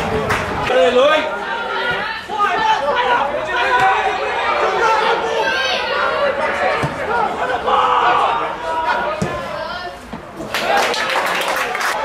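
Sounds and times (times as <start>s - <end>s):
spectators chattering: 0.0s - 12.0s.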